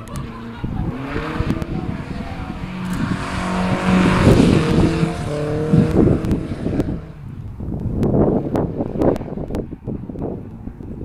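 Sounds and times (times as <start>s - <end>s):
car engine at high revs: 0.0s - 11.0s.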